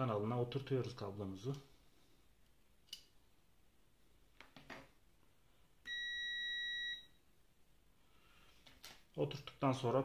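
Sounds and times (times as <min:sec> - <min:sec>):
electronic beep: 0:05.9 - 0:07.1.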